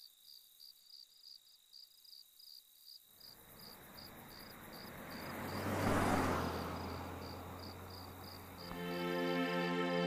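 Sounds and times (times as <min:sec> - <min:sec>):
crickets chirping: 0:00.0 - 0:09.4.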